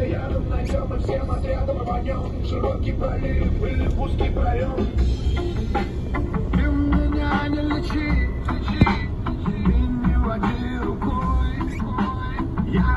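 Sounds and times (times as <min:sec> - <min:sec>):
rap music with heavy bass beat: 0:00.0 - 0:12.9.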